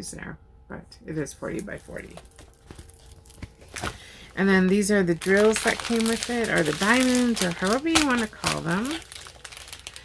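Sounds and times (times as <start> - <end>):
plastic sleeve crinkling: 1.3 - 10.0.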